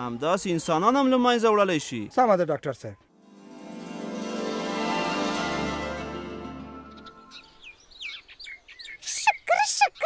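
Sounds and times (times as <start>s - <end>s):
small bird chirping: 6.9s - 10.0s.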